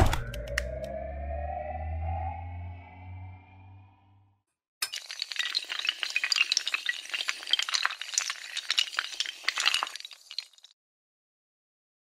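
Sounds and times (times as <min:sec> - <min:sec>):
dominoes toppling: 0:04.8 - 0:10.7.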